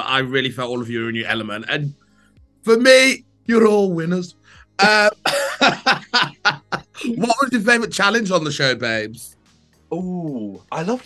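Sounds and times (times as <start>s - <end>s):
person laughing: 4.8s - 7.4s.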